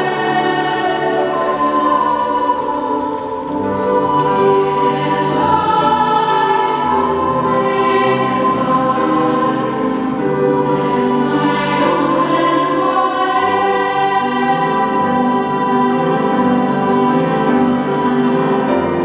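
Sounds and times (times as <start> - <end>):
choir singing sustained notes: 0.0 - 19.0
grand piano accompaniment: 0.0 - 19.0.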